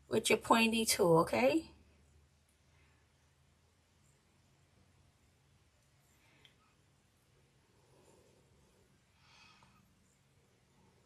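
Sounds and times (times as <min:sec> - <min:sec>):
faint soft rustle: 0:01.7 - 0:11.0.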